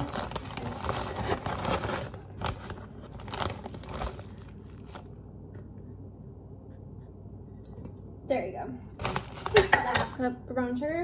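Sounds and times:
plastic bag crinkling: 0:00.0 - 0:05.2, 0:08.9 - 0:10.0.

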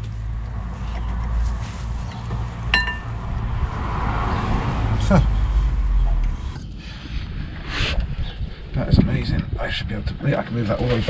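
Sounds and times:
metallic clink: 0:02.7 - 0:03.1.

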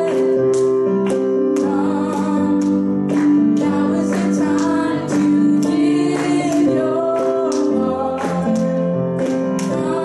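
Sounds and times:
digital piano: 0:00.0 - 0:10.0
woman singing slow song: 0:01.5 - 0:08.8, 0:09.6 - 0:10.0.

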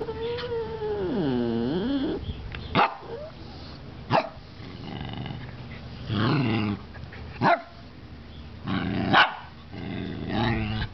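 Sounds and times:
small dog growling: 0:00.0 - 0:02.3, 0:04.6 - 0:06.9, 0:08.6 - 0:10.9
dog barking: 0:02.8 - 0:03.1, 0:04.1 - 0:04.4, 0:07.4 - 0:07.8, 0:09.1 - 0:09.5.

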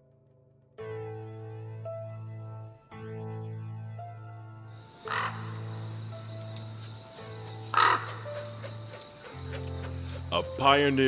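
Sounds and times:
music with sustained low notes: 0:00.0 - 0:11.0
crow cawing: 0:04.9 - 0:10.3.

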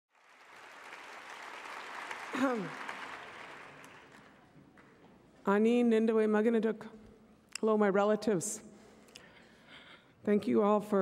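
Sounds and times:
audience applauding: 0:00.1 - 0:05.0.

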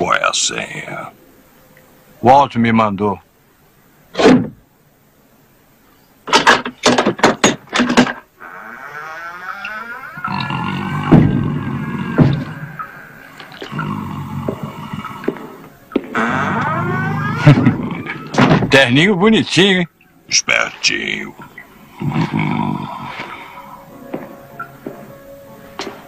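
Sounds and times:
door unbolting clunks: 0:06.3 - 0:12.9, 0:15.9 - 0:18.9.

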